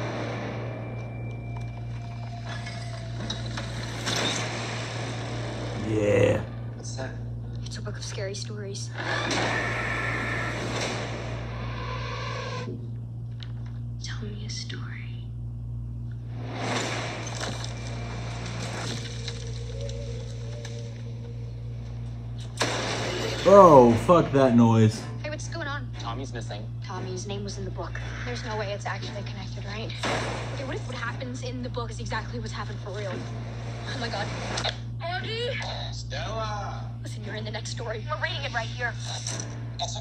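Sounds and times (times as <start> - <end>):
low steady hum: 0.0 - 40.0
low eerie drone: 16.2 - 25.3.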